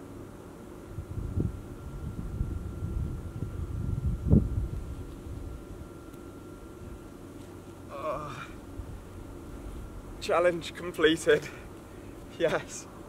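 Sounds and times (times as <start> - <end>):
wind buffeting microphone: 1.0 - 5.6.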